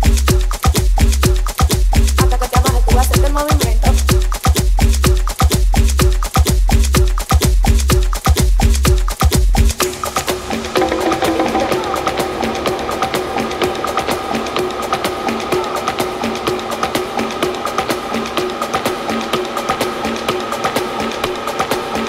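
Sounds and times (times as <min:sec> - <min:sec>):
percussive tech house music: 0:00.0 - 0:22.0.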